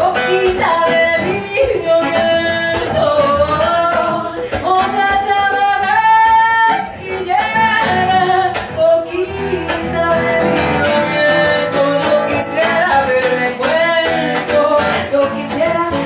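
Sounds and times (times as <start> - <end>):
instrumental accompaniment: 0.0 - 16.0
woman singing wordless melody: 0.0 - 16.0.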